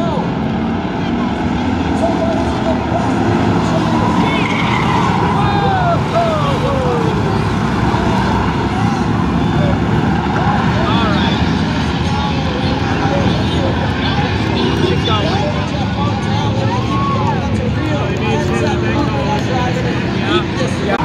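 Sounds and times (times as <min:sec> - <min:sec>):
racing car engines: 0:00.0 - 0:21.0
tyres squealing: 0:02.0 - 0:09.0.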